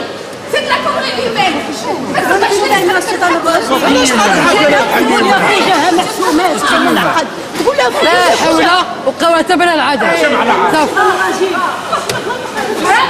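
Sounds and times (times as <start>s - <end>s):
overlapping voices in a hall: 0.0s - 9.0s, 10.2s - 13.0s.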